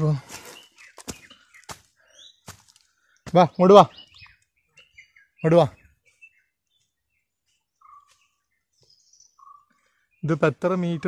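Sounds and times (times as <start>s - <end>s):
faint bird chirps: 0.0s - 11.0s.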